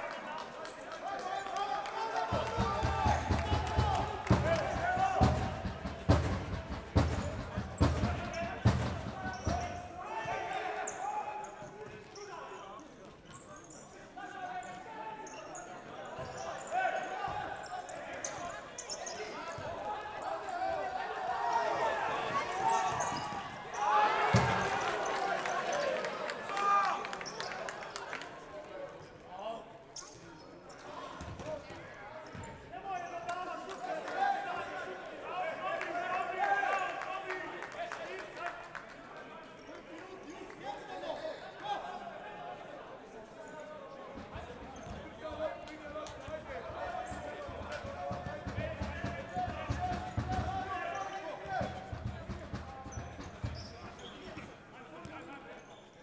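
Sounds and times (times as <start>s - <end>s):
people shouting and calling: 1.6s - 5.5s.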